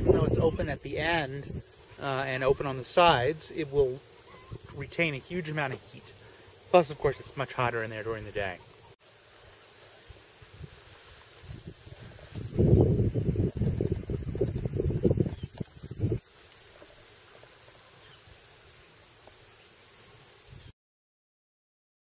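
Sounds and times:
wind buffeting microphone: 0.0 - 1.8, 4.4 - 5.0, 11.4 - 16.3.

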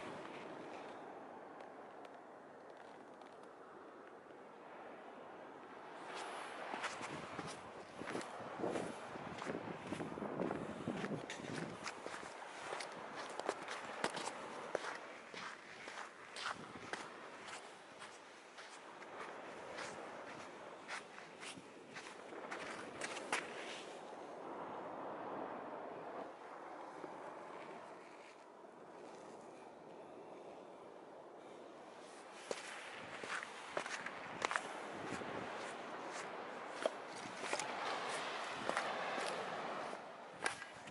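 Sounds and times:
low wind rumble: 0.0 - 40.9
footsteps crunching on sand: 6.0 - 24.0, 32.2 - 40.9.

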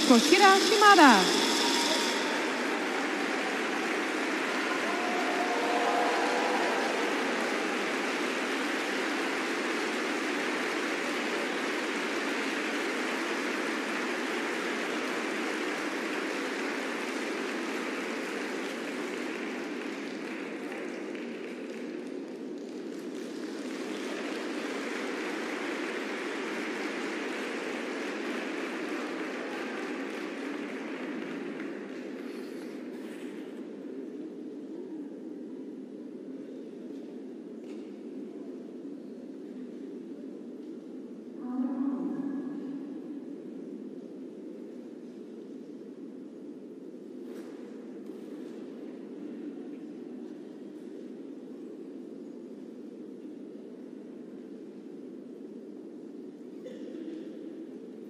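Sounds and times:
audience applauding: 0.0 - 33.7
faint cheer: 1.2 - 12.6.

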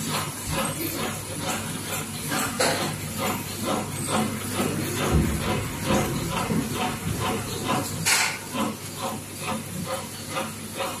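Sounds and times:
packaging machine pulsing: 0.0 - 11.0.

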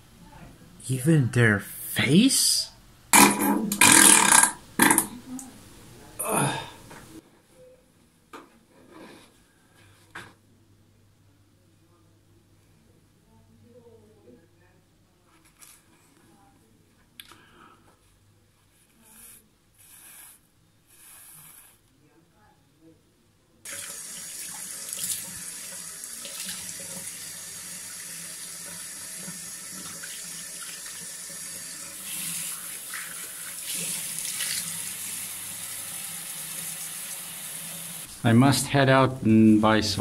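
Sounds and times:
water running from sink tap: 23.7 - 38.1.

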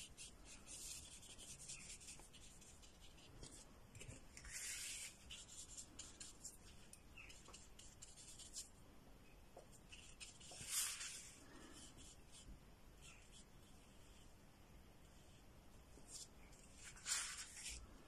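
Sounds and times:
paintbrush strokes on paper: 0.0 - 8.7, 9.7 - 14.4, 15.0 - 18.0.

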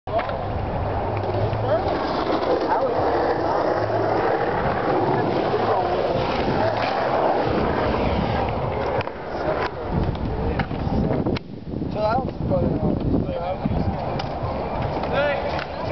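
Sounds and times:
skateboard clacks: 0.1 - 11.5, 12.9 - 15.9
people chattering: 0.1 - 15.9
skateboard wheels rolling on concrete: 0.1 - 15.9.

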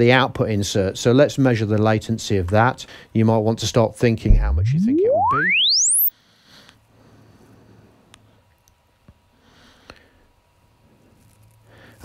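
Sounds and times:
low hum: 4.3 - 6.1
rising sine sweep tone: 4.3 - 6.1.

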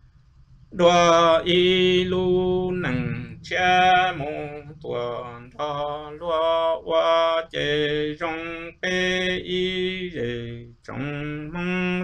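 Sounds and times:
man singing solo: 0.8 - 12.0.

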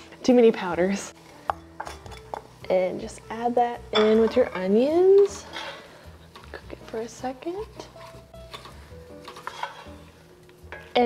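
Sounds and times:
wooden spoon scraping a pot: 4.6 - 10.2.

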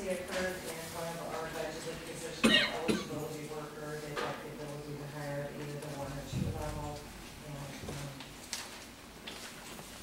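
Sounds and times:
person coughing: 2.4 - 3.2.

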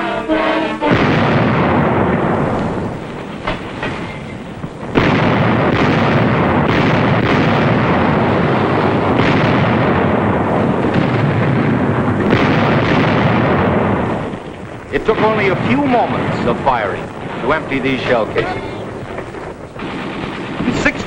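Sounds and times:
gunfire and shell explosions: 0.0 - 21.0
sharp blasts: 0.0 - 21.0.

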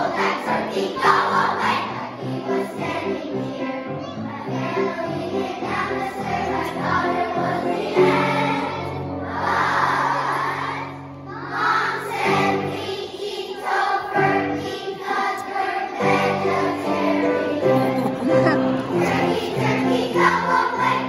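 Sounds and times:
children's choir singing: 0.0 - 21.0
instrumental accompaniment: 16.0 - 21.0.

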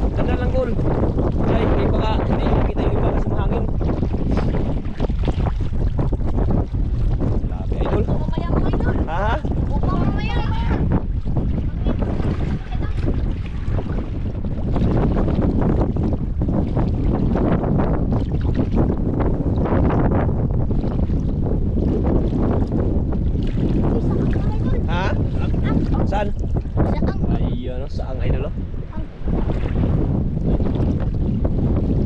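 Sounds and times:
shallow water sloshing around legs: 0.0 - 27.0, 28.8 - 32.0
wind buffeting microphone: 0.0 - 32.0.

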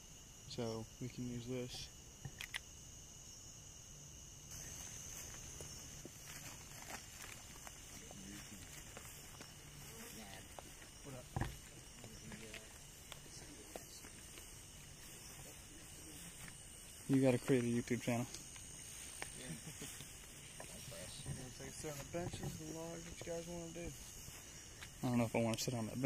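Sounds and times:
crickets trilling: 0.0 - 26.0
footsteps rustling in grass: 4.5 - 26.0.

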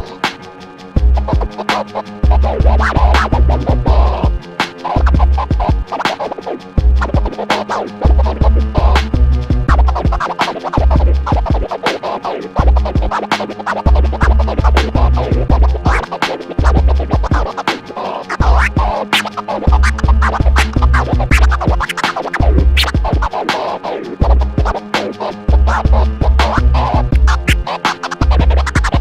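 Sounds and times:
record scratching on a turntable: 0.0 - 0.4, 1.0 - 29.0
hip-hop beat: 0.0 - 29.0
heavy deep bass hits: 6.8 - 7.1.

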